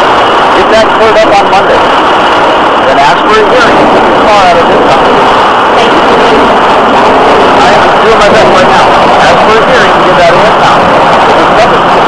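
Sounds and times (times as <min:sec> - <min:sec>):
indistinct voices talking: 0:00.0 - 0:12.0
loud steady background noise: 0:00.0 - 0:12.0.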